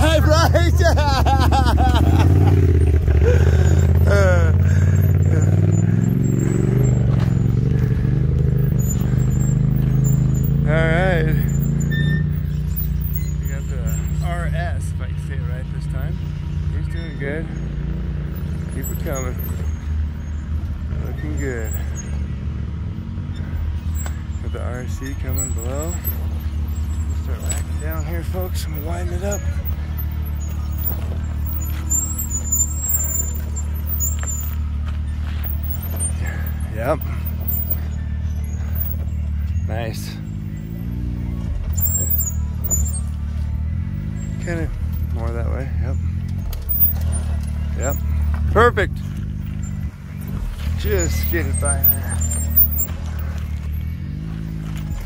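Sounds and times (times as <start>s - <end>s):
off-road vehicle engine running: 0.0s - 55.0s
faint voices talking: 12.7s - 55.0s.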